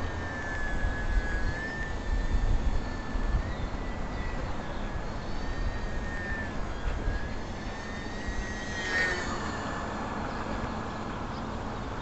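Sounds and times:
model airplane motor whining: 0.0s - 12.0s
wind rumble on microphone: 0.0s - 12.0s.

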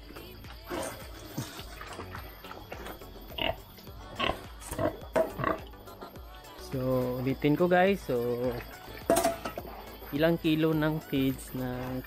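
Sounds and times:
pigs calling: 0.6s - 6.2s.

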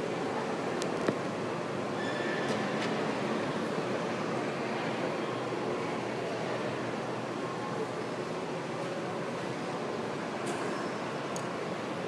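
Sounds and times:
background rumble of busy place: 0.0s - 12.0s.

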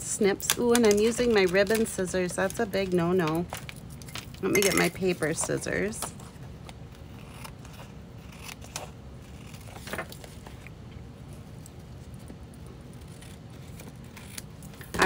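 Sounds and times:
scissors snipping paper: 0.4s - 10.7s, 11.6s - 15.0s.

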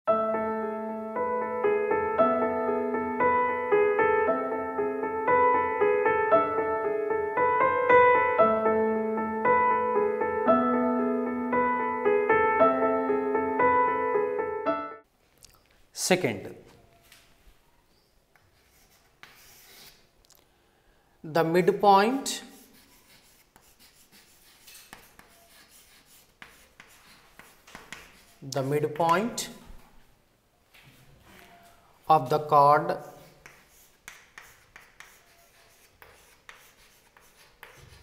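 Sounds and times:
chalk scratching on chalkboard: 18.3s - 20.1s, 22.2s - 29.5s, 32.8s - 38.0s.

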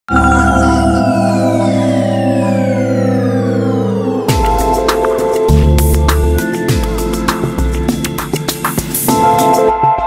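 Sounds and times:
tone falling in pitch: 0.1s - 6.4s
held synthesizer chord: 0.1s - 8.1s.

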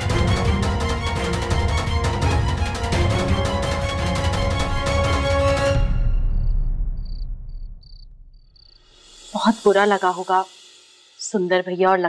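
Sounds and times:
crickets chirping: 6.3s - 9.7s.

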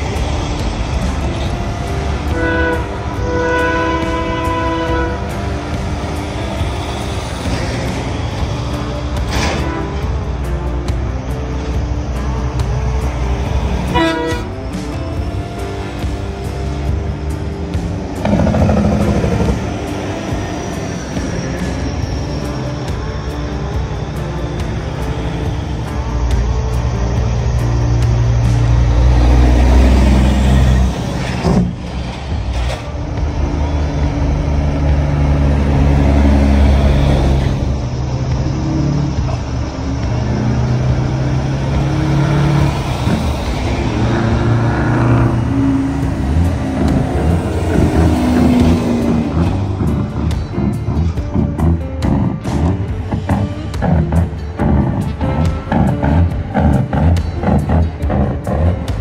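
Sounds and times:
diesel trucks driving past: 0.0s - 59.0s
music: 0.0s - 59.0s.

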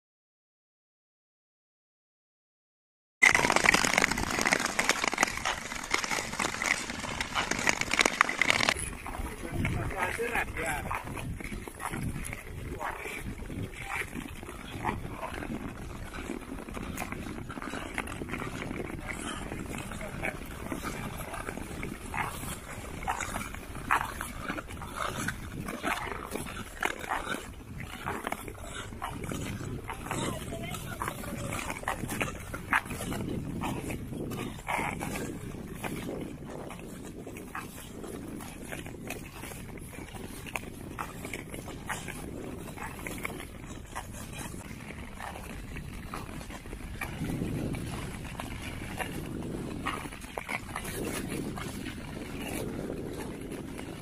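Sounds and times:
skate blades scraping on ice: 3.2s - 54.0s.

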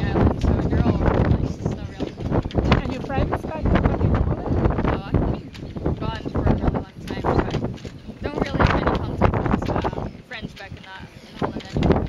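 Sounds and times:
person speaking: 0.0s - 12.0s
wind buffeting microphone: 0.0s - 12.0s.

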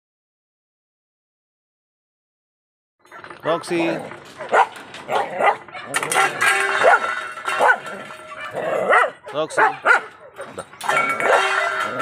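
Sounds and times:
dog barking: 4.4s - 11.8s.

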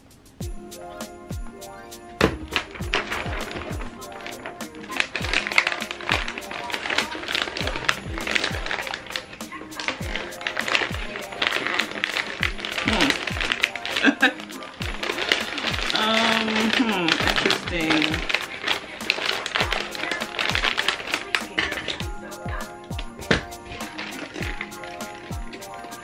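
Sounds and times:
hip-hop background music: 0.0s - 26.0s
wrapping paper crinkling: 2.2s - 26.0s.

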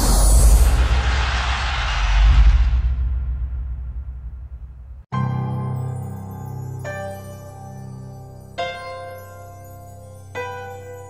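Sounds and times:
deep bass boom: 0.0s - 5.1s
rushing whoosh: 0.0s - 5.1s.

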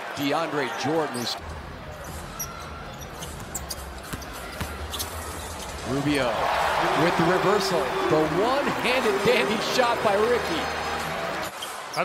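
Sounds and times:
sneakers squeaking on court: 0.0s - 5.9s
crowd rumble: 1.4s - 11.5s.

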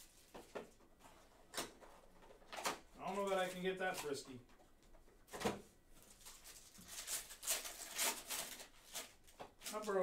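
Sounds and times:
foil wrapper crinkling and tearing: 6.2s - 10.0s.

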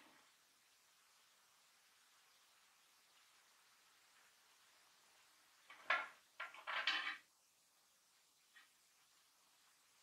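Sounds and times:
metal rings knocking and rattling: 5.7s - 7.2s.

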